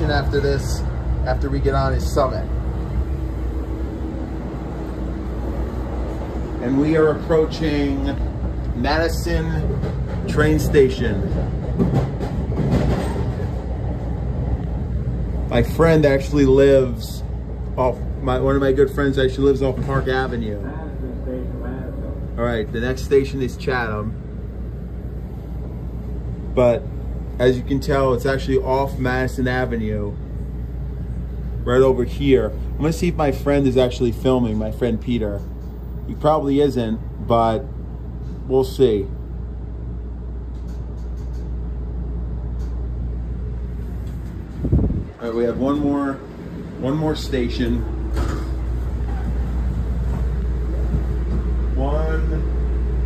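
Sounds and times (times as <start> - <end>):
train rumbling inside passenger car: 0.0 - 38.4, 39.0 - 53.0.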